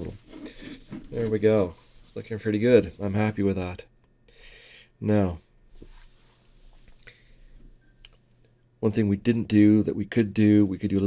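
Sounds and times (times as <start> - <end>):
man speaking: 1.1 - 3.9, 5.0 - 5.5, 8.8 - 11.0.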